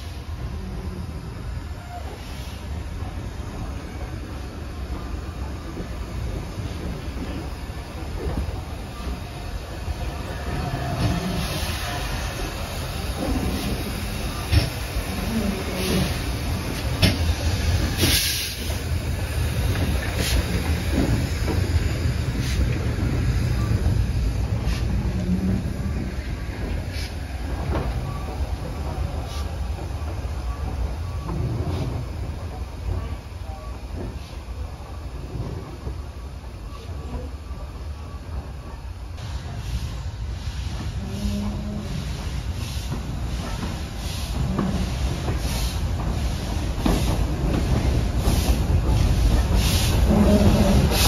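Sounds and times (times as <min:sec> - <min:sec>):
train rolling past: 0:00.0 - 0:51.0.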